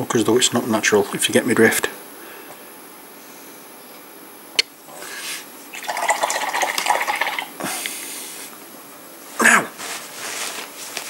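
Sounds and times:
paintbrush swishing in rinse water: 5.8s - 7.4s.

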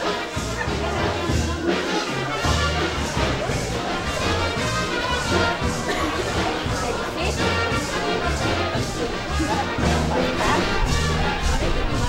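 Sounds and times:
brass band playing: 0.0s - 12.0s.

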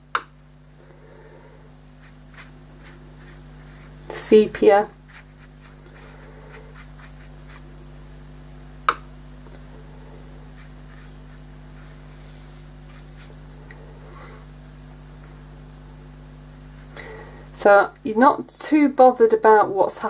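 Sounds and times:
low electrical hum: 0.0s - 20.0s
brush scratching on paper: 1.9s - 7.8s, 10.0s - 13.4s.

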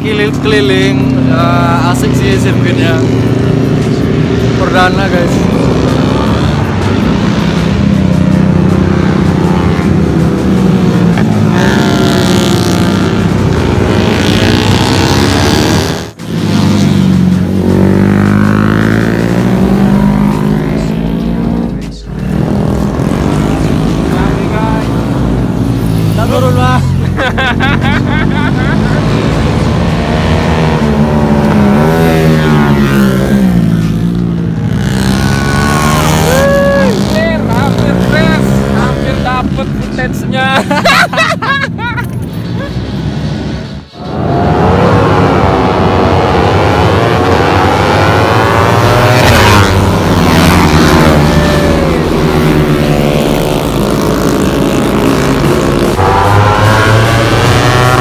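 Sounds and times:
motorcycle engines revving: 0.0s - 58.0s.

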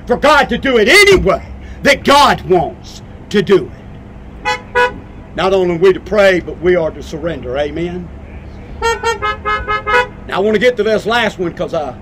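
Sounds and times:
car horn honking: 4.4s - 5.2s, 8.2s - 10.4s.

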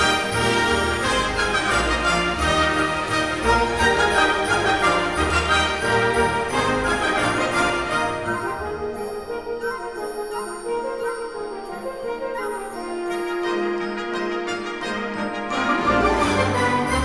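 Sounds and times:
orchestral music with brass: 0.0s - 17.0s.

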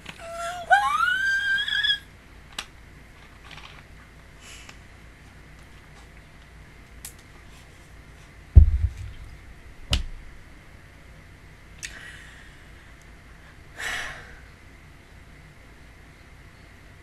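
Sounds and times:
low steady hum: 0.0s - 17.0s
sharp knock: 8.6s - 9.3s
heavy bump on microphone: 8.6s - 10.3s.

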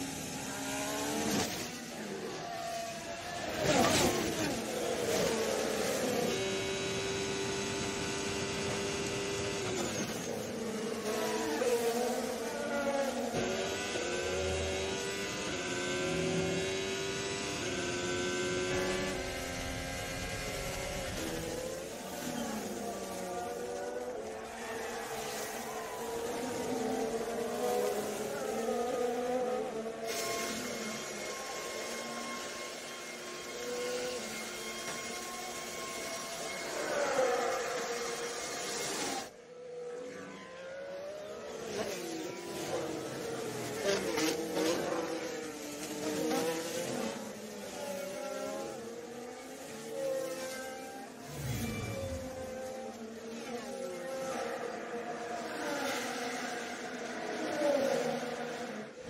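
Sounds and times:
racing car engines: 0.0s - 59.0s.

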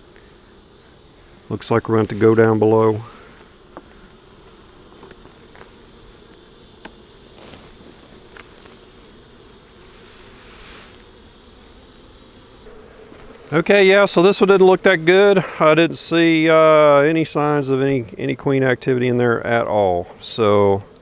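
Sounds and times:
honey bees buzzing: 0.0s - 21.0s
faint clicks of hive frames: 0.1s - 0.3s, 3.4s - 8.8s, 20.7s - 21.0s.

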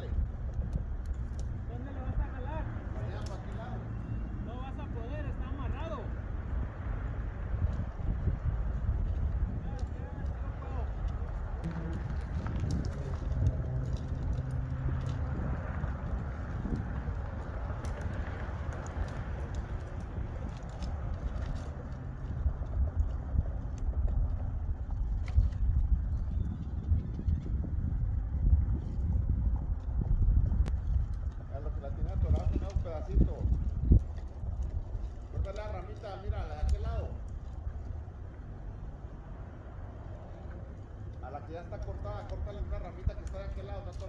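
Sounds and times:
low outdoor rumble: 0.0s - 44.0s.

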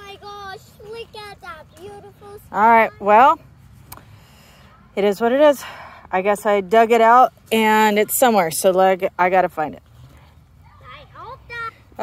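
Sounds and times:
child's voice: 0.0s - 3.1s, 10.6s - 12.0s
low background noise: 0.0s - 12.0s.

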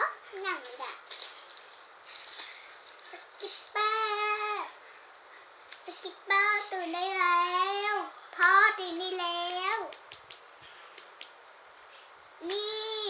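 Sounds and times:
girl singing: 3.1s - 4.8s, 5.8s - 10.0s, 12.4s - 13.0s.

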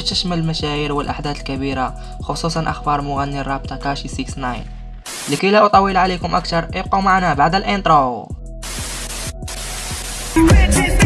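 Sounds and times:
static hiss: 5.0s - 5.6s, 8.6s - 10.8s
dance music with heavy bass beat: 8.5s - 11.0s.

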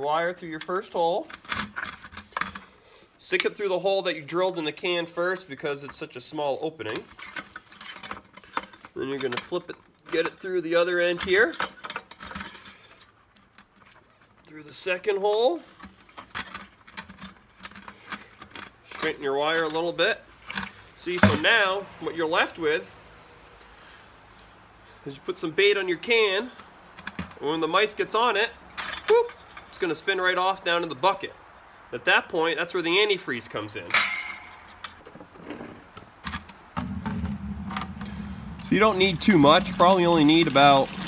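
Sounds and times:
liquid pouring into plastic bucket: 36.8s - 41.0s.

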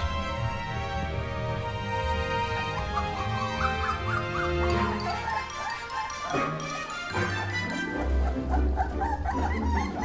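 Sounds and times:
puppies whimpering and yipping: 2.4s - 10.0s.

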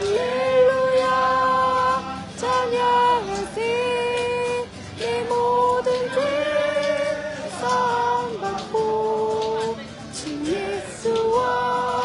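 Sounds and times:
acoustic guitar: 0.0s - 12.0s
group singing a worship song: 0.0s - 12.0s.

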